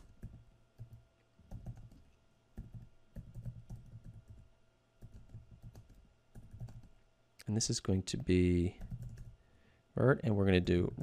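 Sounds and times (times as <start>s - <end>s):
keyboard typing: 0.0s - 2.0s, 2.6s - 6.9s, 8.1s - 9.4s.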